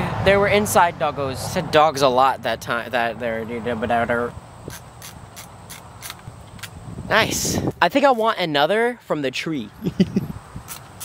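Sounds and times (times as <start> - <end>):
film camera winding clicks: 4.7 - 6.8.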